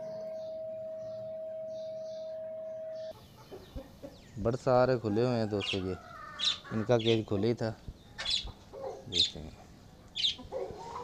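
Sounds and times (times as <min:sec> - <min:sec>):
incubator electrical hum: 0:00.0 - 0:03.1
faint chicken sounds: 0:00.1 - 0:07.4, 0:08.1 - 0:11.0.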